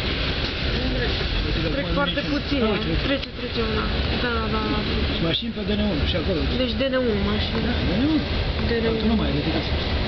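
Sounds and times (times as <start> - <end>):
train rumbling along: 0.0 - 10.0.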